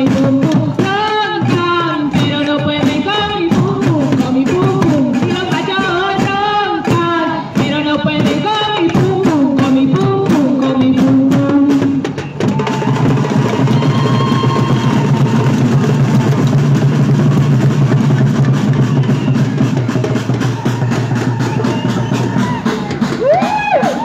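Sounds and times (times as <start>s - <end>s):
drums beating fast rhythm: 0.0s - 24.0s.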